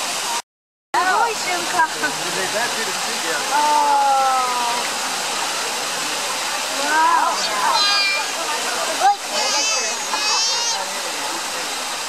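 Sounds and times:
onlookers' voices: 1.0s - 12.0s.

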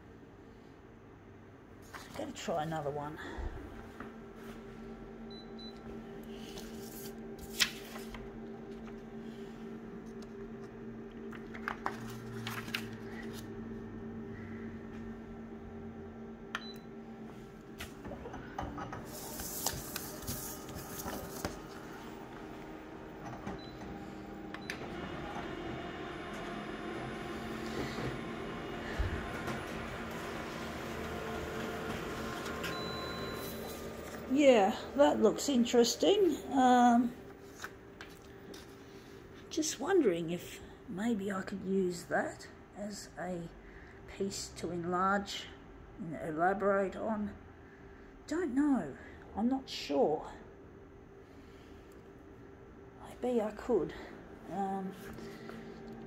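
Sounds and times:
photocopier humming: 2.8s - 39.5s, 53.7s - 56.0s
paper rustling on glass: 6.4s - 8.2s.

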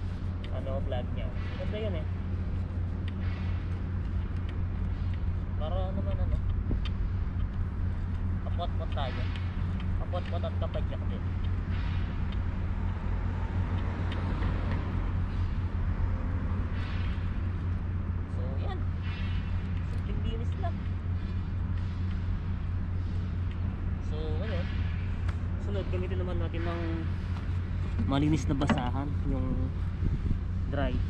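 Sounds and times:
low outdoor rumble: 0.0s - 31.0s.

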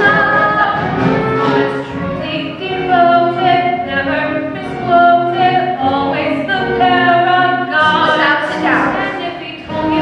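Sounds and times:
woman singing: 0.0s - 1.2s, 2.2s - 10.0s
choir singing: 0.0s - 2.1s, 2.7s - 10.0s.

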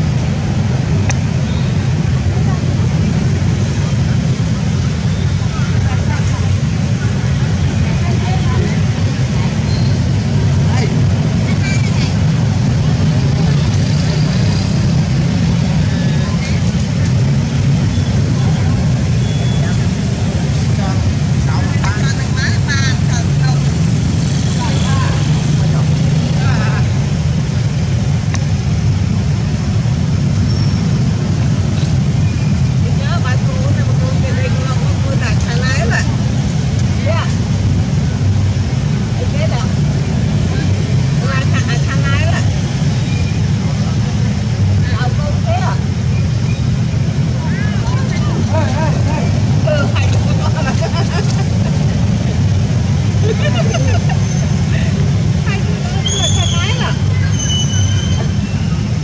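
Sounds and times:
steady low rumble: 14.9s - 57.2s
macaques squeaking calls: 55.9s - 58.8s.

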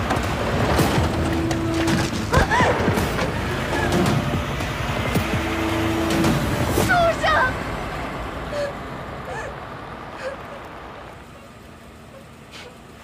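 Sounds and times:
minivan engine pulling away: 0.3s - 13.0s.

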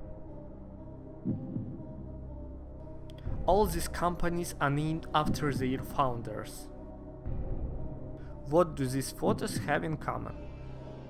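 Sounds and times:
heartbeat-like thump: 1.2s - 1.8s, 5.2s - 5.7s, 9.3s - 9.8s.

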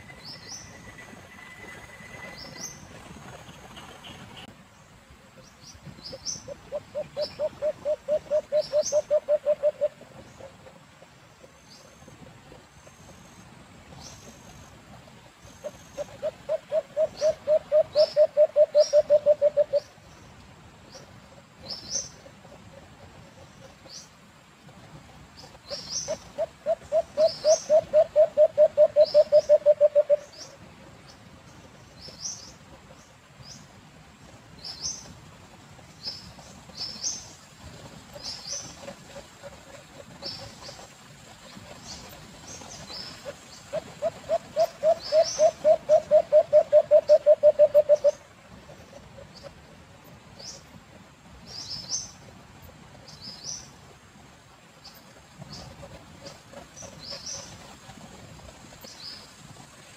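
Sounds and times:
dove cooing rapidly: 6.5s - 10.5s, 16.0s - 19.9s, 26.1s - 30.4s, 43.7s - 48.2s.

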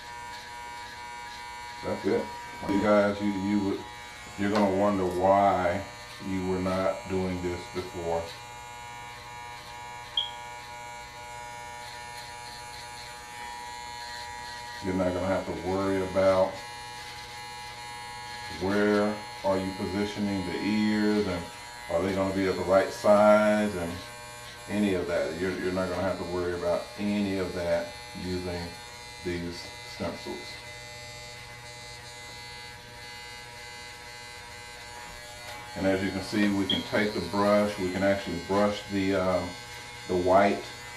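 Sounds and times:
electric hair clippers buzzing: 0.0s - 40.9s
sharp high-pitched blip: 10.2s - 10.4s.

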